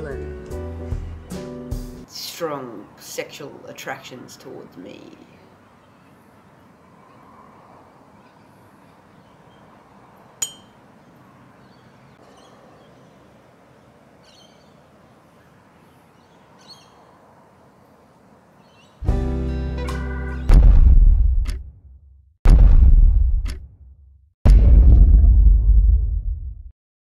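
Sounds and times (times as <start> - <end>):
sharp metallic clink: 10.4 - 10.8
faint bird chirps: 11.6 - 13.3.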